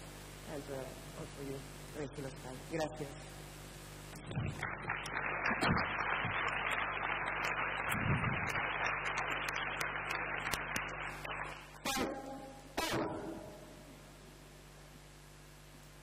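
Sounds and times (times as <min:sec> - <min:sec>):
audience applauding: 0:04.4 - 0:11.8.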